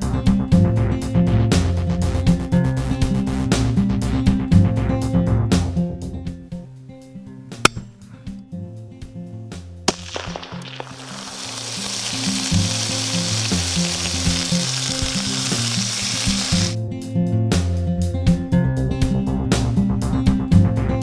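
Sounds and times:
meat sizzling in a pan: 0:09.9 - 0:16.8.

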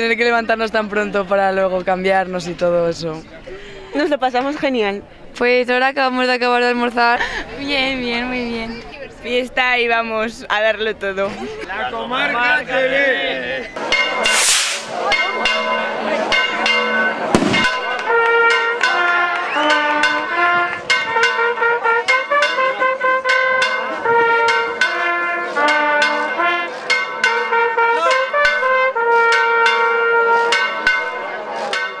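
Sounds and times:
drum strikes: 0:13.8 - 0:19.1, 0:20.0 - 0:32.0
brass band music: 0:13.8 - 0:32.0
loud bang: 0:13.9 - 0:15.1, 0:17.3 - 0:18.0
bell ringing rapidly: 0:13.9 - 0:19.1, 0:20.0 - 0:32.0
rocket firing with hiss: 0:14.3 - 0:15.0.

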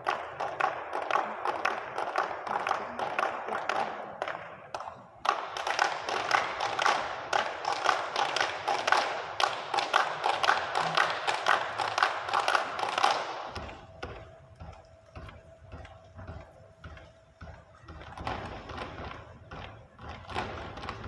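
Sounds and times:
rhythmic hand clapping: 0:00.0 - 0:21.0.

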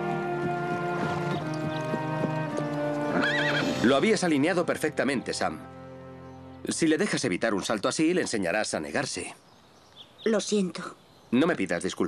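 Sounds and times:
horse whinnying: 0:00.0 - 0:04.0
hoofbeats: 0:00.0 - 0:04.4
background music: 0:00.0 - 0:08.2.

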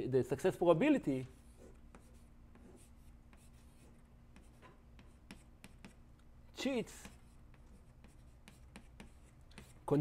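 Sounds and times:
room hum: 0:00.0 - 0:10.0
chalk tapping and scraping on blackboard: 0:01.0 - 0:06.0, 0:06.6 - 0:10.0.

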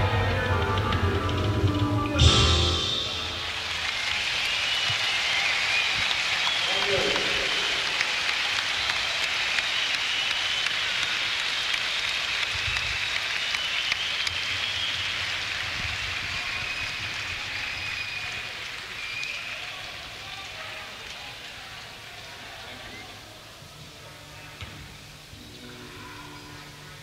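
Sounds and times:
crowd applauding: 0:00.0 - 0:23.5
shrill whistles: 0:02.2 - 0:20.0.

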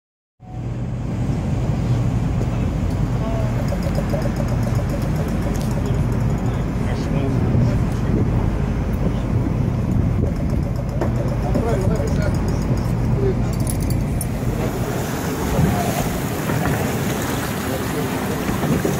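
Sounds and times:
constant low hum: 0:00.4 - 0:18.9
ship machinery rumble: 0:00.4 - 0:18.9
wind buffeting microphone: 0:00.9 - 0:18.9
water splashing against boat hull: 0:14.3 - 0:18.9.

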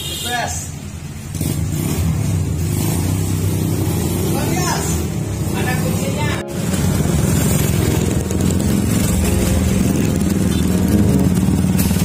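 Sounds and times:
vehicle engine idling: 0:05.3 - 0:12.0.

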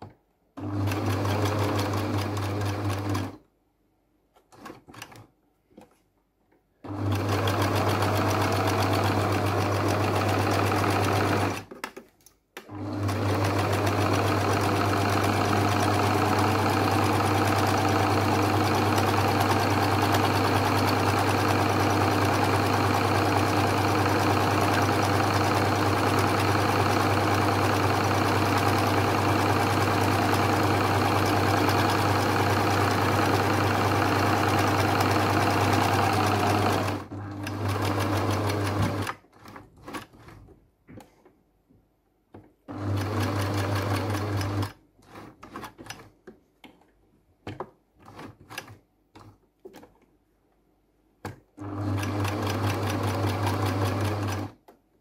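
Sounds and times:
sewing machine running: 0:00.6 - 0:03.4, 0:06.9 - 0:11.7, 0:12.7 - 0:39.2, 0:42.7 - 0:44.8, 0:51.6 - 0:54.6.

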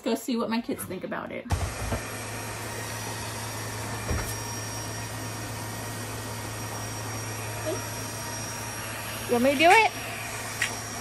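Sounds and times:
bubble gun fan motor whirring: 0:01.5 - 0:11.0.

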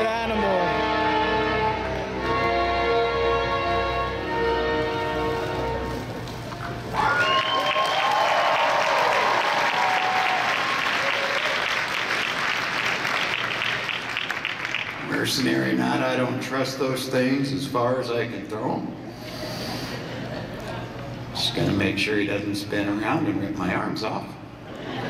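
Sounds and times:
audience applauding: 0:05.9 - 0:15.7.

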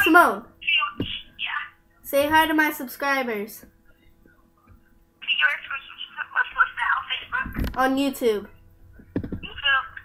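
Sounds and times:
girl talking on speakerphone: 0:00.0 - 0:03.7, 0:05.2 - 0:08.6, 0:09.4 - 0:10.0.

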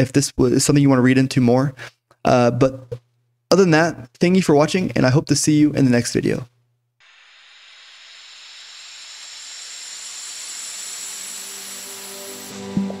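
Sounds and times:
hissing whoosh: 0:07.0 - 0:13.0.

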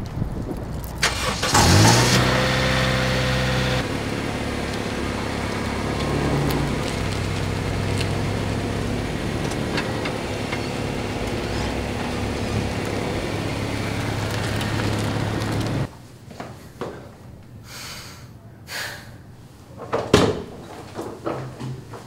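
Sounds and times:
car engine starting and idling: 0:00.8 - 0:15.9.

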